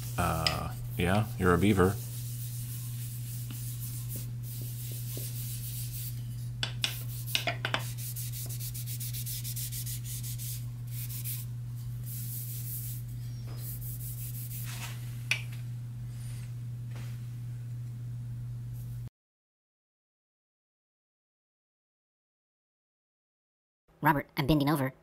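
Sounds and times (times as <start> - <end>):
pad scrubbing wood: 0.0 - 6.1.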